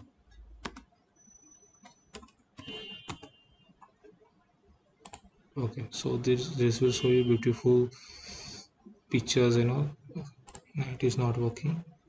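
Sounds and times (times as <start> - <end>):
keyboard typing: 0.0 - 0.9, 1.8 - 4.0, 5.0 - 5.3, 10.2 - 10.8.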